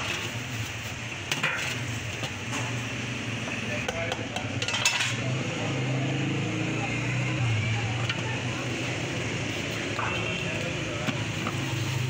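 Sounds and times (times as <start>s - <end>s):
street traffic engine hum: 0.0s - 12.0s.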